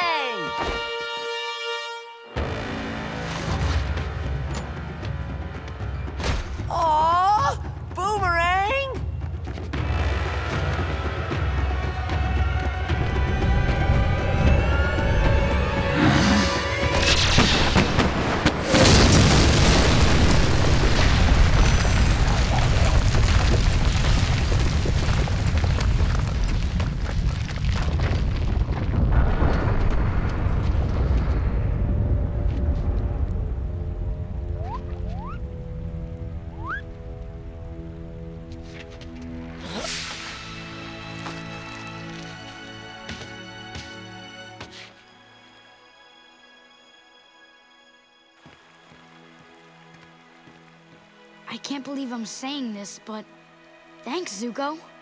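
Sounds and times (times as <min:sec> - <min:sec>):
dramatic orchestral music: 0:00.0 - 0:21.5, 0:30.9 - 0:55.0
explosion rumble: 0:17.0 - 0:34.4.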